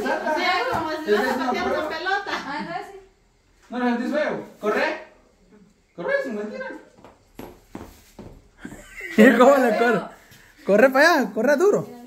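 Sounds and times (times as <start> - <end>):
hard-soled footsteps on concrete: 6.9 - 8.6.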